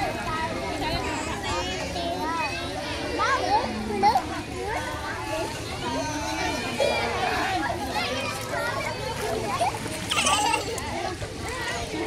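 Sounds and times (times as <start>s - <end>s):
children shouting in a pool: 0.0s - 12.0s.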